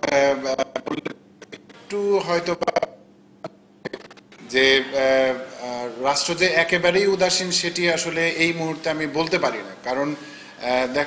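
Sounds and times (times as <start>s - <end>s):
man's drawn-out hesitation sound: 0.0s - 3.0s.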